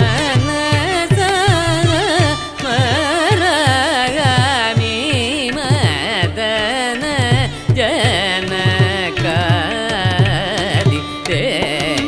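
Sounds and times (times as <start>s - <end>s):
violin accompaniment: 0.0s - 12.0s
man singing ornamented melody: 7.8s - 12.0s.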